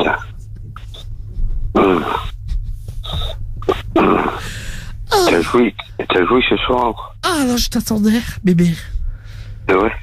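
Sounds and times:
steady low hum: 0.0s - 10.0s
person moaning over telephone: 5.1s - 5.7s.

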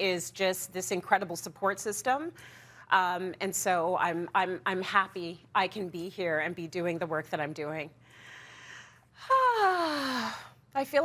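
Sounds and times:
woman sighing: 9.2s - 10.6s.

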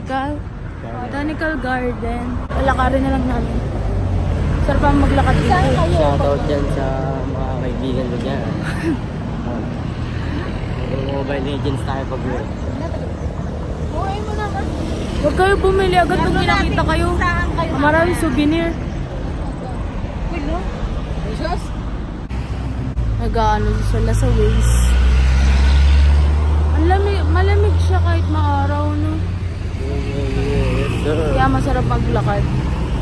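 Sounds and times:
steady low traffic rumble: 0.0s - 33.0s
vehicle passing: 0.0s - 33.0s.

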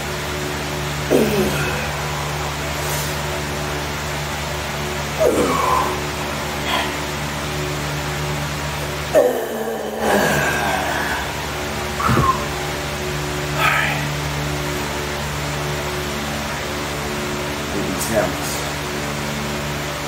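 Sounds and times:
steady hum: 0.0s - 20.0s
man groaning with effort: 1.0s - 2.5s, 5.2s - 7.2s, 9.1s - 12.5s, 13.5s - 14.2s.

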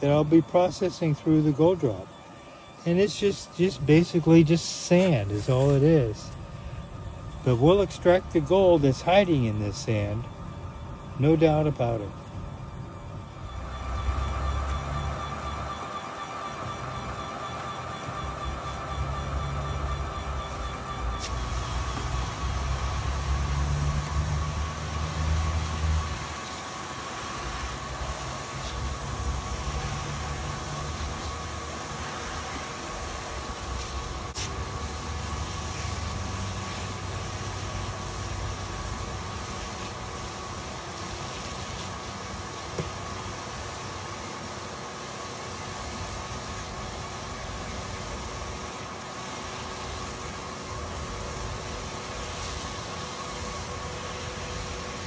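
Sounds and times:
faint machine hum: 0.0s - 55.0s
water spraying from hose: 2.9s - 6.3s, 13.5s - 55.0s.

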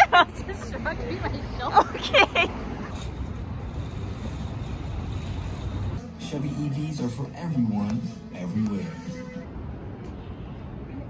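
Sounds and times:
traffic rumble: 0.0s - 11.0s.

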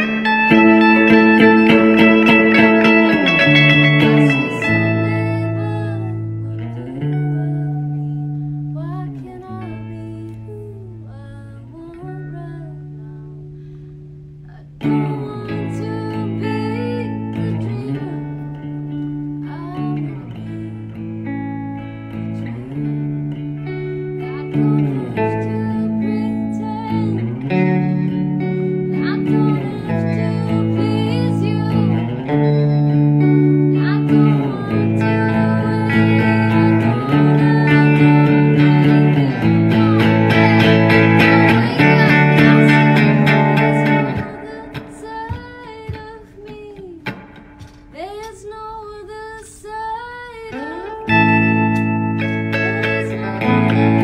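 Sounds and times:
electric guitars strummed: 0.0s - 10.4s, 14.8s - 48.4s, 50.5s - 54.0s
woman singing: 0.0s - 13.7s, 14.4s - 54.0s.

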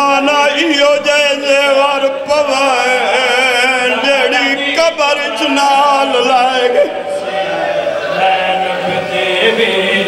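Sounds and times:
man singing into a microphone: 0.0s - 10.0s
men chanting: 0.0s - 10.0s.

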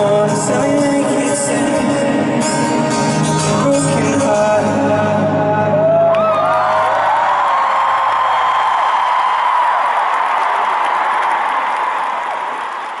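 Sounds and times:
stadium crowd cheering and applauding: 5.7s - 13.0s.

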